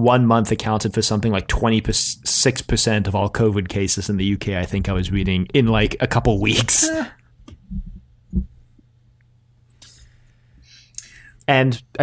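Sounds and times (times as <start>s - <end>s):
faint steady hum: 0.0s - 12.0s
soft low thumps: 4.4s - 6.0s, 7.4s - 8.9s.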